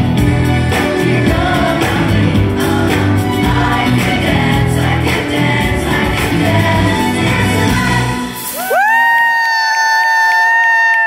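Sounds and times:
backing track with bass: 0:00.0 - 0:08.8
audience cheering: 0:08.4 - 0:11.0.

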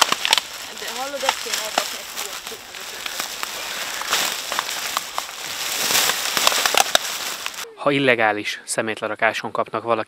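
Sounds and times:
plastic sacks rustling: 0:00.0 - 0:07.6.

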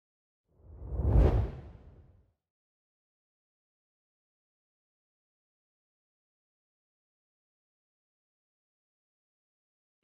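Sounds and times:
deep whoosh: 0:00.7 - 0:02.0.

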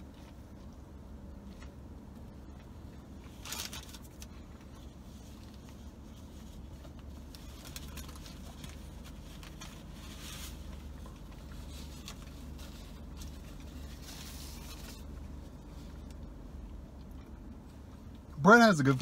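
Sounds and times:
low car cabin hum: 0:00.0 - 0:19.0
paper wrapper crinkling: 0:03.3 - 0:04.3, 0:07.2 - 0:15.2.

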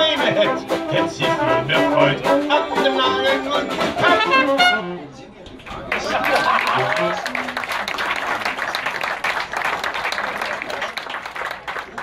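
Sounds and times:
dixieland jazz band playing: 0:00.0 - 0:05.1
people clapping: 0:05.5 - 0:12.0.

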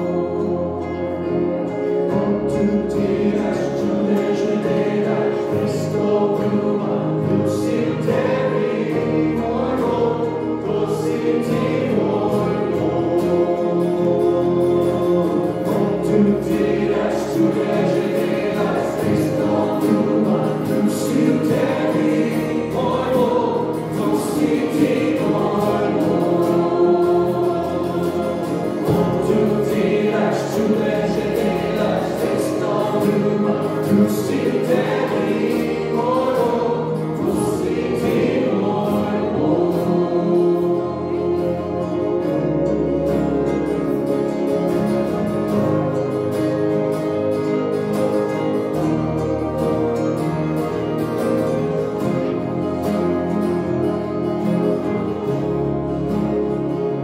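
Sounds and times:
group singing worship song: 0:00.0 - 0:44.2
electric keyboard: 0:00.0 - 0:57.0
strummed acoustic guitars: 0:00.0 - 0:57.0.

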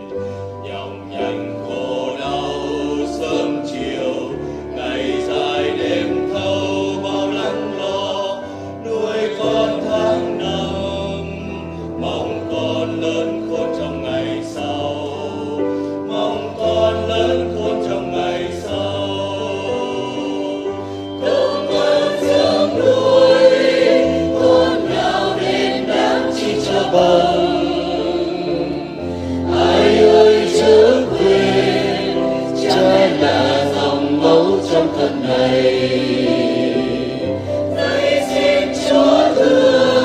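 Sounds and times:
choir singing a hymn: 0:00.0 - 0:40.0.

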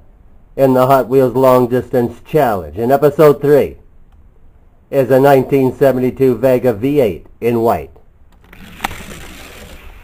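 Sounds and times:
toy car rolling on plastic track: 0:08.4 - 0:10.0.

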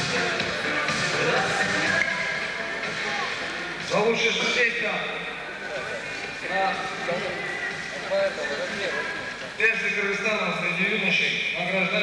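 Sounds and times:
man announcing over loudspeakers: 0:03.8 - 0:12.0.

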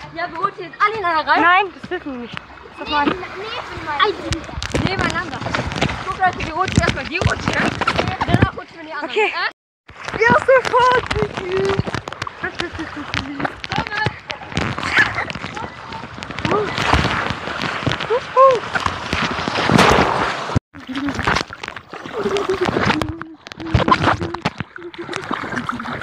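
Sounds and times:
water rushing down slide: 0:10.0 - 0:26.0.

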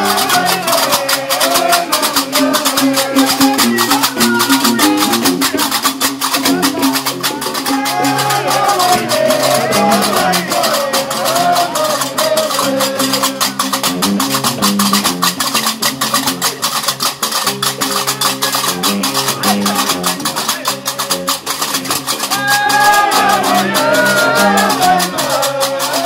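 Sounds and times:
men singing: 0:00.0 - 0:14.0, 0:18.5 - 0:26.0
metallic castanets clatter: 0:00.0 - 0:26.0
plucked bass lute: 0:00.0 - 0:26.0.

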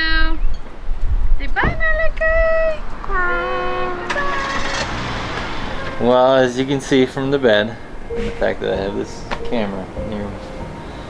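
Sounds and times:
car engine rumble: 0:01.7 - 0:11.0.

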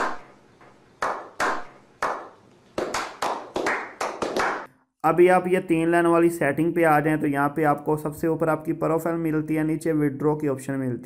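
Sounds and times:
men clapping hands: 0:00.0 - 0:00.2, 0:01.0 - 0:04.7.

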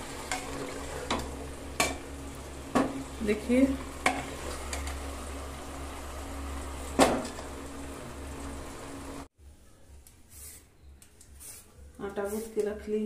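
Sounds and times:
curry sizzling in a pot: 0:00.0 - 0:09.3.

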